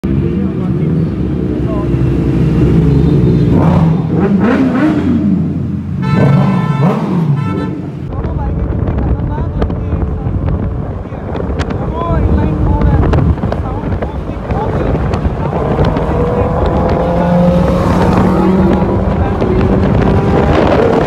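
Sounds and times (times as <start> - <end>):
motorcycle engines revving: 0.0 - 21.0.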